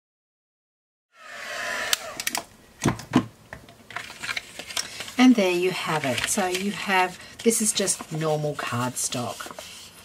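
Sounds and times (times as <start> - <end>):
heat tool fan winding down: 1.2 - 2.4.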